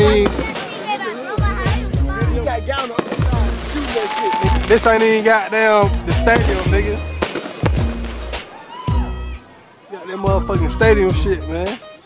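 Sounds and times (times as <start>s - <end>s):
music with deep bass: 0.0s - 0.6s, 1.4s - 5.2s, 5.8s - 9.5s, 10.3s - 11.8s
fireworks bursting: 0.0s - 1.8s, 2.8s - 9.0s.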